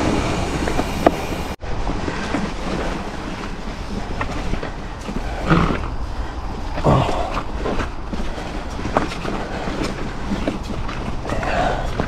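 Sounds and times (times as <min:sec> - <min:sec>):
bike tyres rumbling on rocky trail: 0:00.0 - 0:12.0
wheels knocking on rocks: 0:00.0 - 0:12.0.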